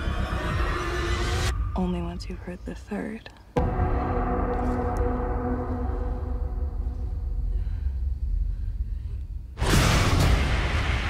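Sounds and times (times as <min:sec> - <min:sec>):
steady low rumble: 0:01.4 - 0:11.0.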